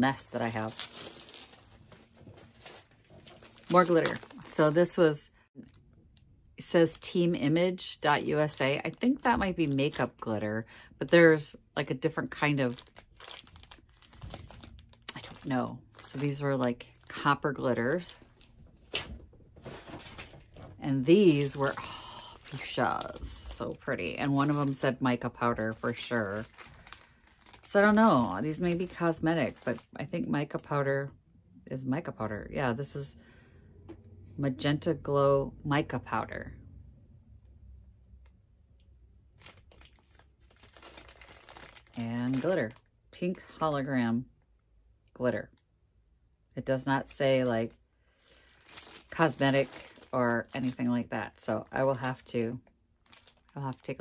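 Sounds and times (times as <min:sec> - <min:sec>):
plastic bag crinkling: 0:00.0 - 0:05.0, 0:12.3 - 0:30.0, 0:39.3 - 0:42.9, 0:48.3 - 0:54.0.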